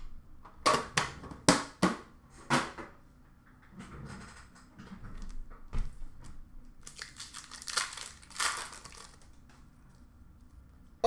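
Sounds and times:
card packs clacking on glass: 6.8 - 9.2
card pack handling noise: 6.8 - 9.4.

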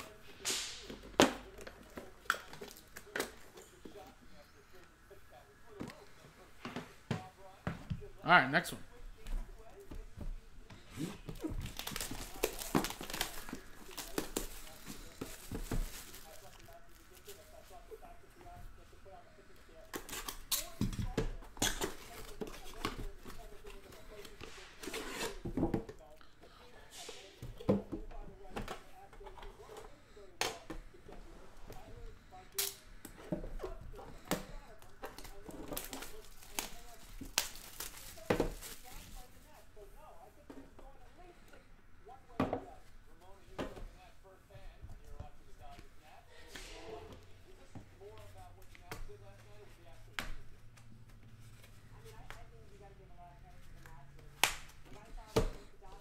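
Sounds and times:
plastic wrap tearing and crinkling: 11.4 - 17.4, 35.1 - 39.2.

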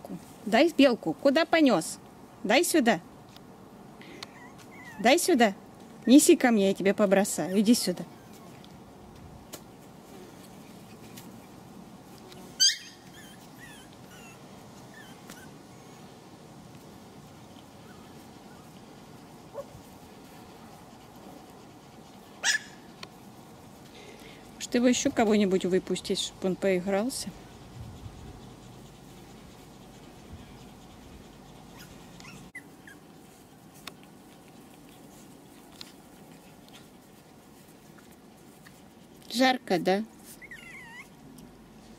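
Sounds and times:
puppy whimpering: 4.2 - 5.2, 7.4 - 8.6, 12.6 - 16.1, 31.6 - 33.1, 40.3 - 41.2
puppy yelping: 4.3 - 5.1, 12.6 - 16.1, 22.4 - 22.9, 31.7 - 33.0, 40.3 - 41.2.

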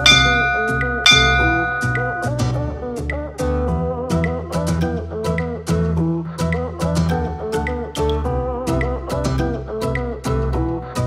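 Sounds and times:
bell-like chime strikes: 0.0 - 2.6
background music with plucked guitar: 2.4 - 11.0.

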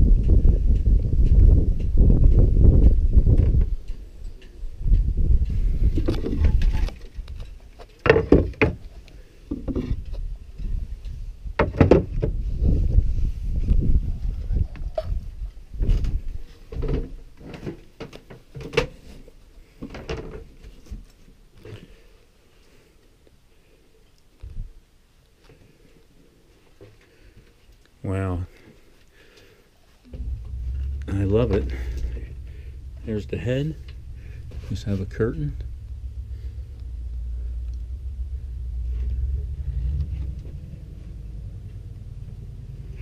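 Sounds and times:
wind rumble: 0.0 - 7.6, 9.6 - 17.1, 30.0 - 43.0
microphone handling: 0.1 - 3.8, 30.0 - 40.9.

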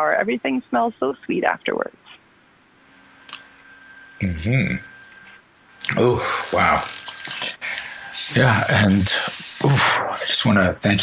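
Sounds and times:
faint background hiss: 0.0 - 11.0
faint steady hum: 0.0 - 11.0.

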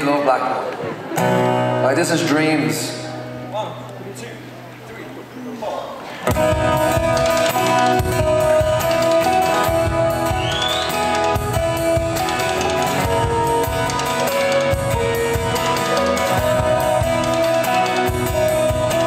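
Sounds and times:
strummed acoustic guitar: 1.1 - 3.6, 6.2 - 19.0
drum kit playing: 6.3 - 19.0.

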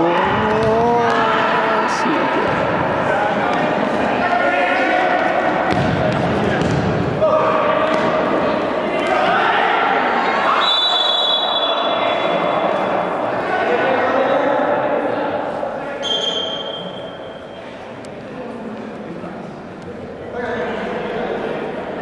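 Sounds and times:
players shouting: 0.0 - 14.3
long high whistle: 10.6 - 11.9.

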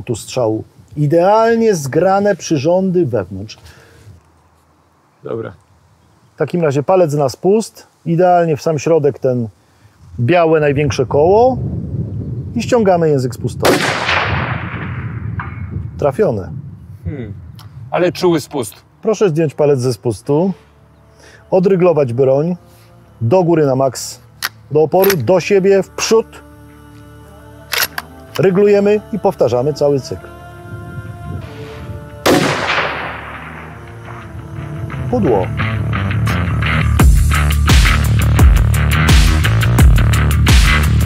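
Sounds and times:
rifle shot boom: 13.6 - 15.7, 32.2 - 34.2.

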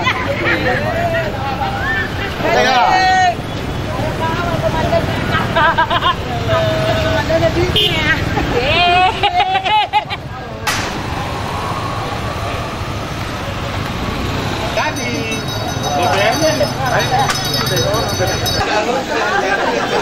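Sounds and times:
motorbike engines running: 0.0 - 20.0
road rumble: 0.0 - 20.0
crowd voices calling out: 10.5 - 20.0.

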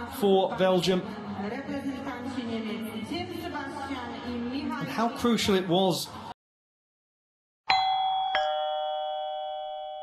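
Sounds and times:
two-note ding-dong chime: 7.7 - 10.0.

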